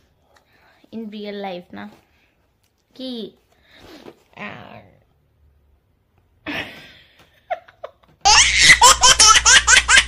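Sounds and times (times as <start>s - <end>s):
loud laughter: 7.5s - 10.0s.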